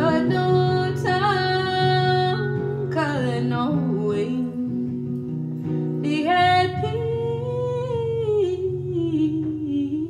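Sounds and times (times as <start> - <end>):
soft acoustic guitar: 0.0 - 10.0.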